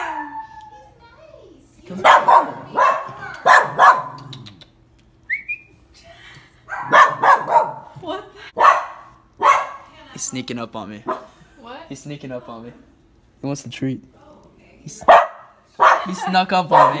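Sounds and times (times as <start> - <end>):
dog barking: 2.0 - 4.3, 6.7 - 7.9, 8.6 - 9.9, 11.0 - 11.4, 15.0 - 17.0.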